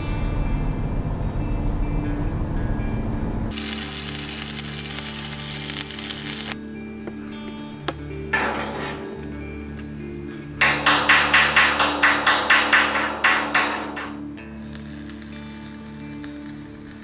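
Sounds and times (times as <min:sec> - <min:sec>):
soft background music: 0:00.0 - 0:17.0
arc welding crackling hiss: 0:03.5 - 0:06.6, 0:14.5 - 0:17.0.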